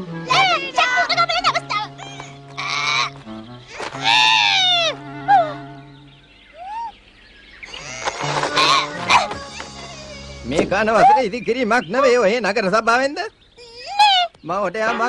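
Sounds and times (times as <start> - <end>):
held background music notes: 0.0 - 6.6, 7.7 - 12.9
cartoon voice: 0.3 - 2.0
cartoon character cry: 4.0 - 5.5.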